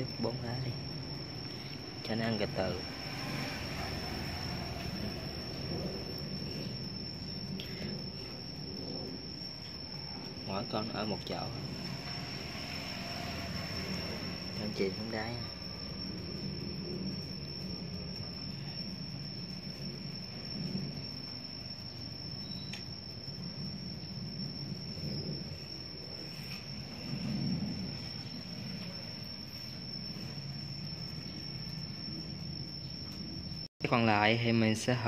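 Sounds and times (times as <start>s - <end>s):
low rumble: 0.0s - 22.4s, 23.0s - 33.7s.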